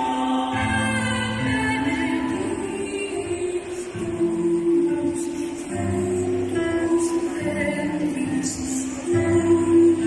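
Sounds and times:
choir singing: 0.0s - 1.6s.

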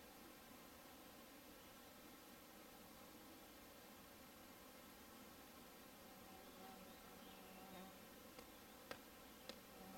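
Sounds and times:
flying insect buzzing: 2.2s - 9.9s
light ticks: 8.4s - 9.6s.

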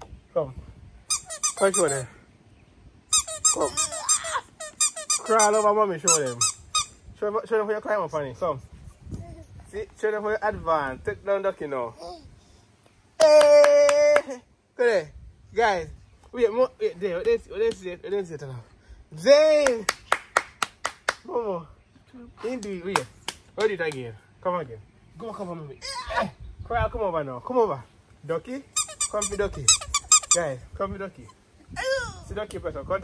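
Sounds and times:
rubber duck toy squeaking: 1.1s - 2.0s, 3.1s - 7.0s, 28.8s - 30.5s
short exclamation: 3.4s - 4.6s
man clapping hands: 13.2s - 14.3s, 19.6s - 21.3s, 22.6s - 24.1s.

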